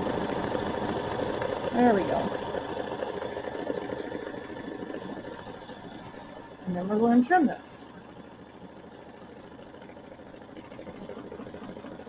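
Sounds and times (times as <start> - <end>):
embroidery machine needle chatter: 0.0 - 12.0.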